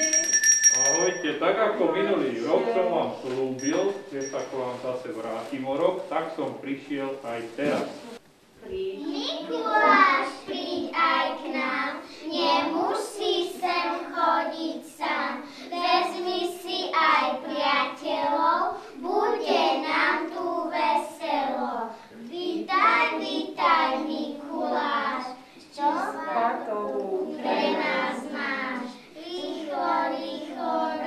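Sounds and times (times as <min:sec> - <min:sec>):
children singing: 0:09.4 - 0:21.7, 0:27.2 - 0:31.0.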